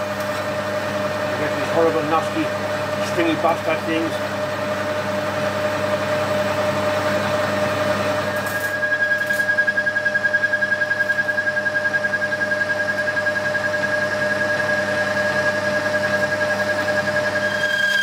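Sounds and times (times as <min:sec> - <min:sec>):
higher whine: 0:00.0 - 0:18.0
metal lathe whining: 0:00.8 - 0:18.0.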